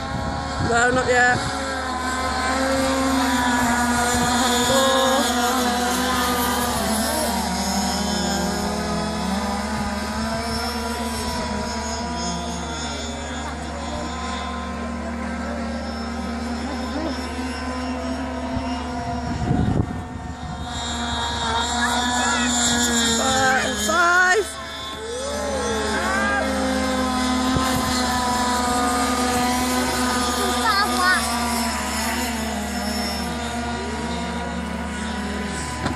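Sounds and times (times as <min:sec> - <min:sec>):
model boat engine whining: 0:00.0 - 0:35.9.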